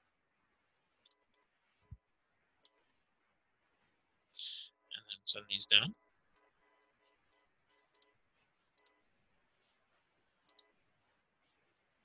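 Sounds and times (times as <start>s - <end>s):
faint computer mouse clicks: 8.8s - 9.0s, 10.4s - 10.7s.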